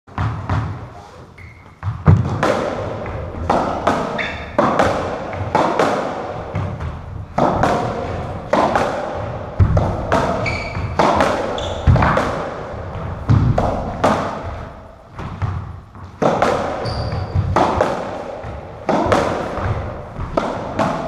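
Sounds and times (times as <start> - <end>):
ball hitting rackets and walls: 0.1 - 21.0
shoes squeaking on wooden floor: 0.6 - 2.2, 4.1 - 4.6, 10.2 - 12.2, 15.9 - 17.6.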